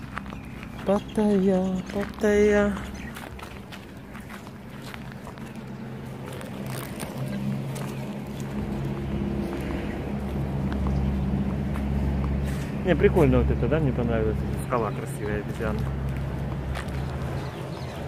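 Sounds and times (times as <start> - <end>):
vehicle engine running: 0.0 - 18.0.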